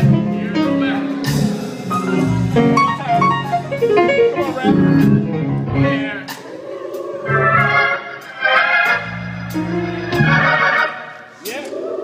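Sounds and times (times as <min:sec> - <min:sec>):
keyboard and organ music: 0:00.0 - 0:12.0.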